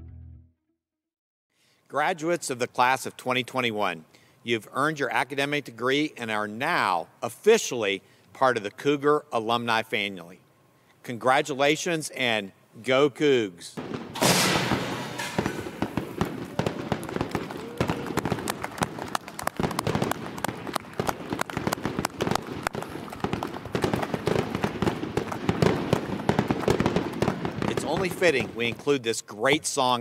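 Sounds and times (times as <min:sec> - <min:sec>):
confetti cannon blast: 0:13.9 - 0:28.5
people clapping: 0:16.4 - 0:26.7.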